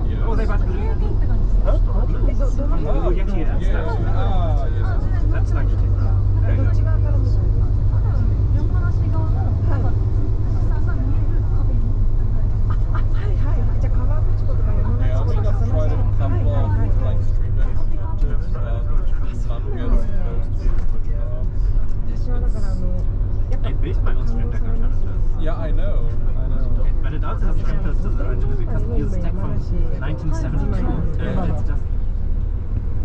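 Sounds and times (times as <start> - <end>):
people talking: 0.0 - 32.0
coach engine and tyres rumble: 0.0 - 33.0
indistinct passenger chatter: 0.0 - 33.0.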